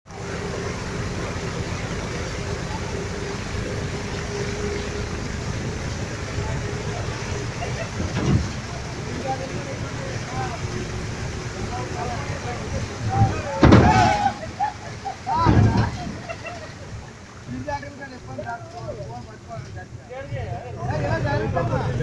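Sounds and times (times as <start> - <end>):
vehicle engine running: 0.1 - 13.6
steady rain: 0.1 - 22.0.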